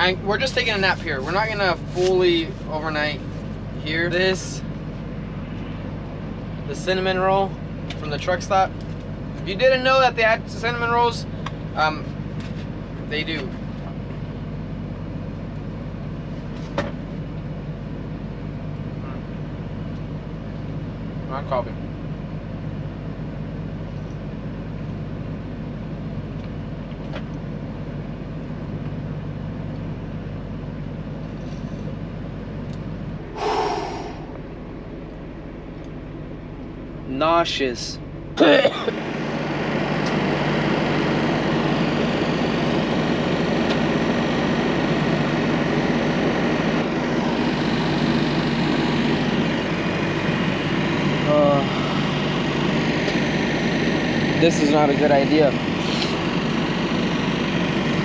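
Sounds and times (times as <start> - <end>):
truck cab hum: 0.0 - 58.0
fan-like rush: 33.3 - 34.5
person laughing: 38.4 - 38.9.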